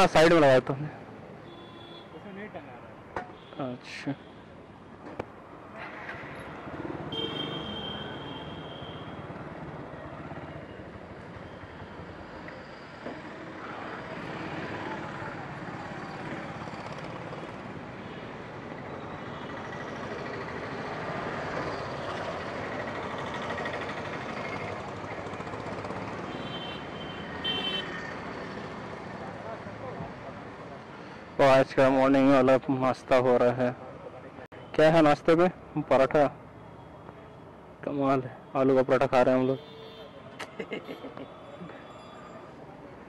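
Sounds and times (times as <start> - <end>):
traffic hum: 0.0 - 43.0.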